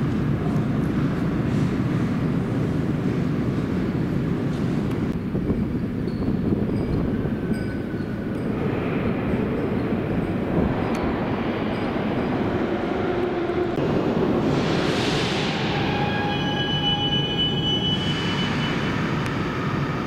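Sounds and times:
metro train rumbling: 0.0s - 20.0s.

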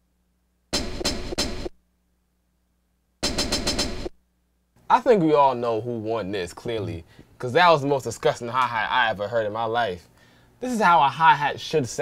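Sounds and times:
sampled hi-hat pattern: 0.7s - 1.8s, 3.2s - 4.2s.

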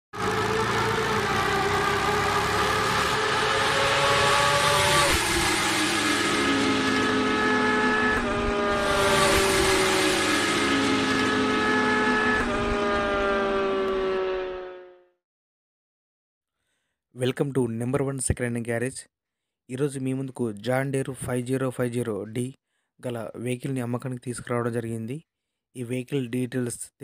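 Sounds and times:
motorcycle engine at high revs: 0.2s - 15.0s.

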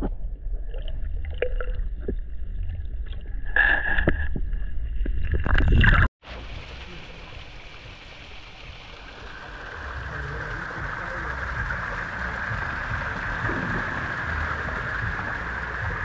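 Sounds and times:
low rumble: 0.0s - 16.0s
water splashing over rocks: 5.3s - 16.0s.

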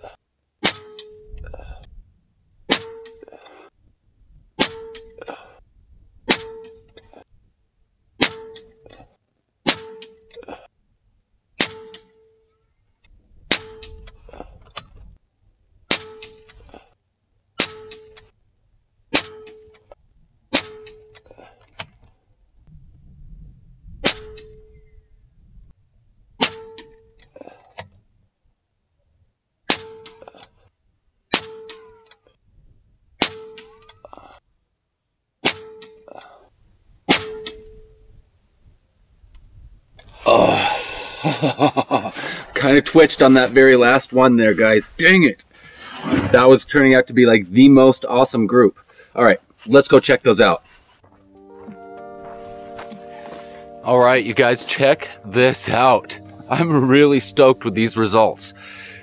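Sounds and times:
air rifle shots: 2.7s - 3.2s, 4.6s - 5.2s, 6.3s - 6.8s, 8.2s - 8.7s, 9.6s - 10.2s, 13.5s - 13.9s, 15.9s - 16.5s, 20.5s - 21.0s, 24.0s - 24.6s, 26.4s - 26.9s, 37.1s - 37.6s.

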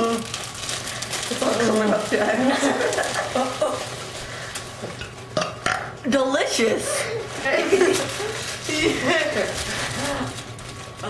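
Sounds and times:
plastic bag crinkling: 0.0s - 5.3s, 6.8s - 11.0s.

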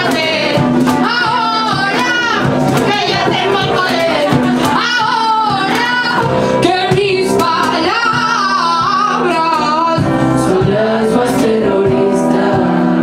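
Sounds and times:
electric guitar: 0.0s - 13.0s
person singing: 0.0s - 13.0s.

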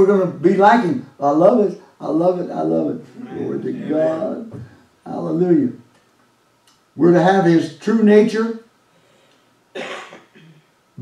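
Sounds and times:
person coughing: 9.8s - 10.6s.

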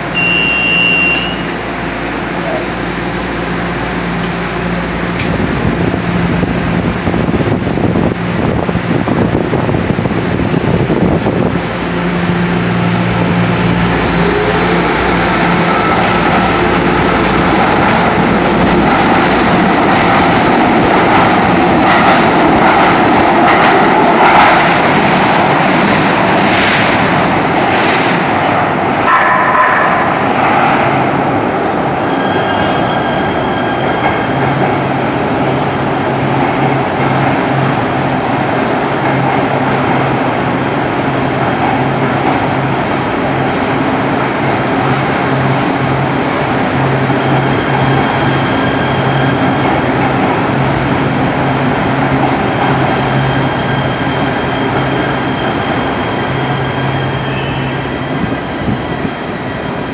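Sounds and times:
train rumble in tunnel: 0.0s - 59.9s.

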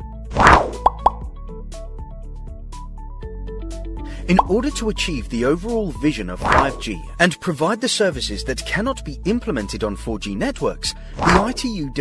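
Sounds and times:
light electronic music: 0.5s - 7.6s.

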